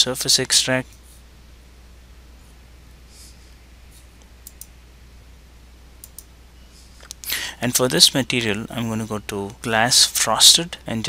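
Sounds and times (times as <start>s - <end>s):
computer mouse clicks: 4.2s - 4.7s, 6.0s - 6.3s.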